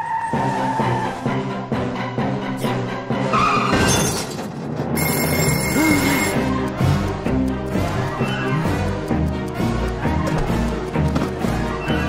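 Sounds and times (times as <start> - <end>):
animated film score music: 0.0 - 12.0
high steady ringing tone: 5.0 - 6.4.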